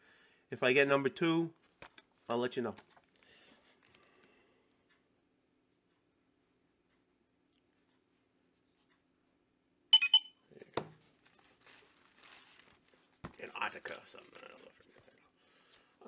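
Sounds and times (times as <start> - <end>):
plastic bag crinkling: 11.1 - 15.2.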